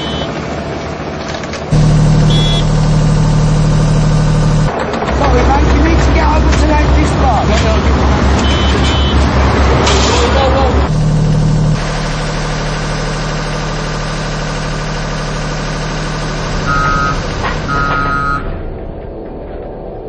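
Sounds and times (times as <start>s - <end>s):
reversing alarm beeps: 0.0s - 0.3s, 2.2s - 2.8s, 8.4s - 9.2s, 16.7s - 18.6s
vehicle engines running: 0.0s - 20.0s.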